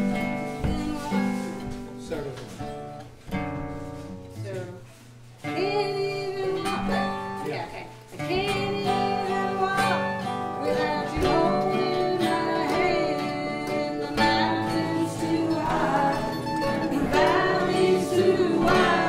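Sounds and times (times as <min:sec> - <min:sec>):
acoustic guitars: 0:00.0 - 0:19.0
mandolin: 0:00.0 - 0:19.0
voices singing chorus: 0:10.6 - 0:19.0.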